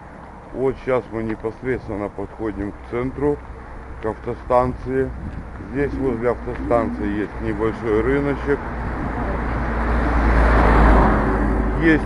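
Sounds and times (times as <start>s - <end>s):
van driving past: 5.6s - 12.0s.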